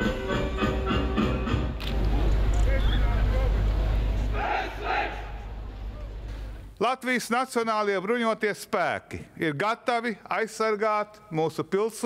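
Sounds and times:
steady low rumble: 1.9 - 6.8
soldiers shouting in unison: 4.3 - 5.4.

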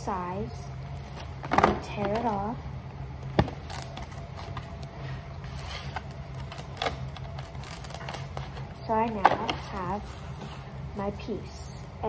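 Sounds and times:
faint low hum: 0.0 - 12.0
plastic wrap crinkling and tearing: 3.4 - 8.8.

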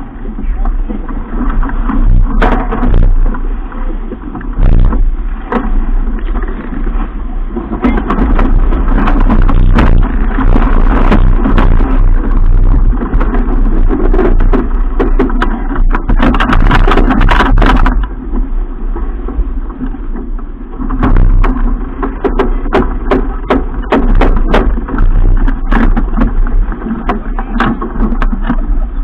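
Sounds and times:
strong wind buffeting microphone: 0.0 - 29.0
water rushing and splashing: 0.0 - 29.0
sharp knocks and hits: 1.4 - 3.4, 4.3 - 7.0, 7.6 - 18.2, 20.8 - 28.6.

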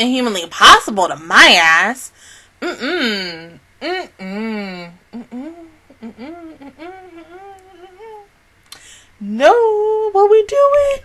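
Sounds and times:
woman humming: 2.6 - 10.1.

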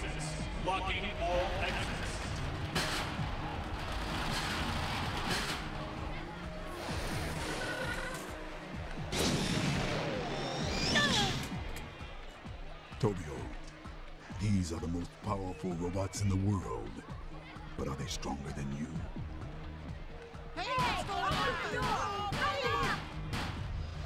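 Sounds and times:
dramatic background music: 0.0 - 24.0
crash and impact effects: 9.1 - 10.9.

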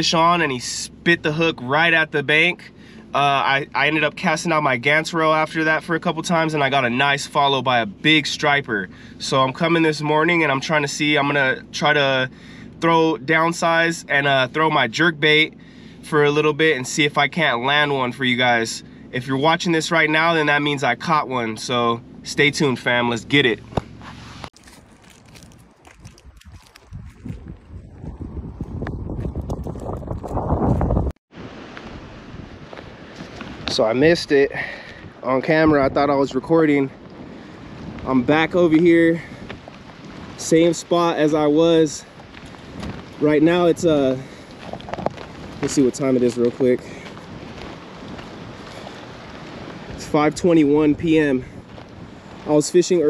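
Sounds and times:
wind rumbling on microphone: 23.6 - 53.0.

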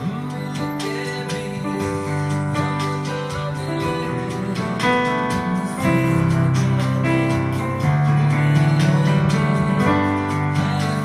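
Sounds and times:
digital piano playing: 0.0 - 11.0.

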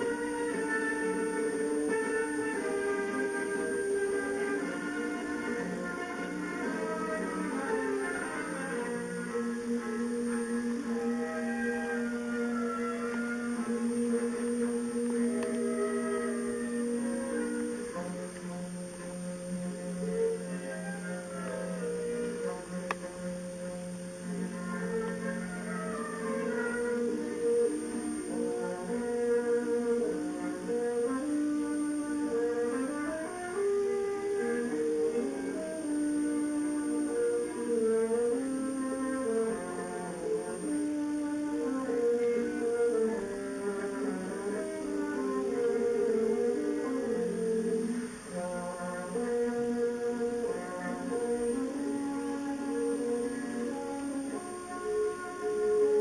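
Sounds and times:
wind band playing long held notes: 0.0 - 56.0.

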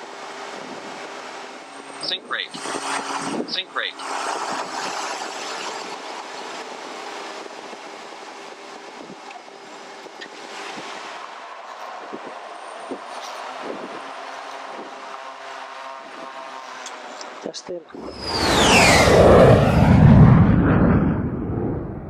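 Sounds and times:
propeller hum: 0.0 - 22.0
rushing noise: 18.0 - 22.0.

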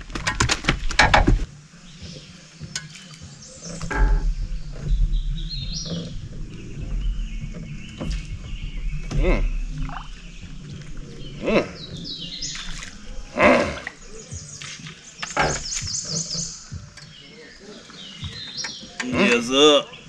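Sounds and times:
birds calling and singing: 0.0 - 20.0
lower bending bird call: 3.3 - 19.0
low rumble: 3.6 - 14.6.

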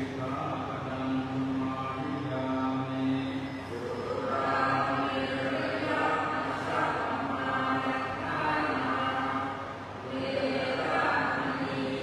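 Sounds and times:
group chanting in unison: 3.7 - 12.0.

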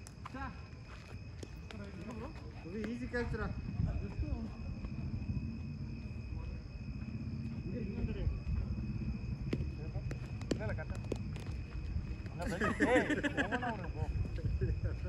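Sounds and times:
low rumbling: 3.2 - 12.7.

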